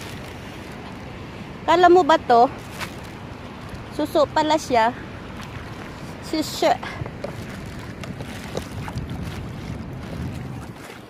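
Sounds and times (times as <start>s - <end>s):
seawater sloshing: 0.0s - 11.0s
wind buffeting microphone: 0.0s - 11.0s.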